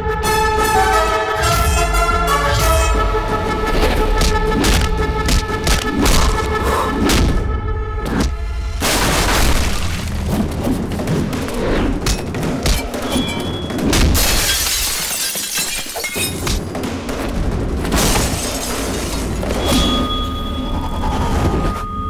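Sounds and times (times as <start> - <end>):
driving background score: 0.0 - 8.8
glass shattering: 12.1 - 16.7, 17.9 - 20.4.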